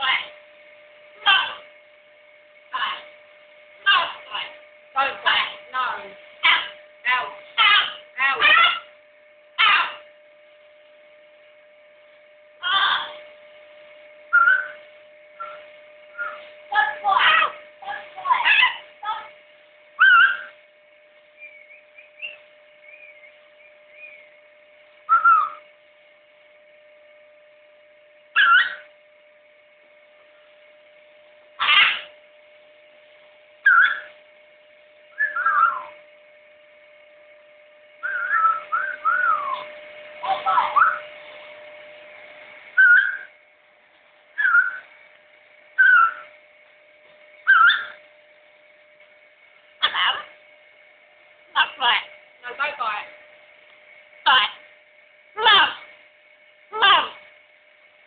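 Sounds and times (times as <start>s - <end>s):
macaw whistling: 14.3s - 14.8s, 15.4s - 15.6s, 16.2s - 16.4s, 20.0s - 20.5s, 21.4s - 24.3s, 25.1s - 25.6s, 28.4s - 28.9s, 33.6s - 34.1s, 35.2s - 35.9s, 38.0s - 39.7s, 42.8s - 43.3s, 44.4s - 44.9s, 45.8s - 46.3s, 47.4s - 48.0s.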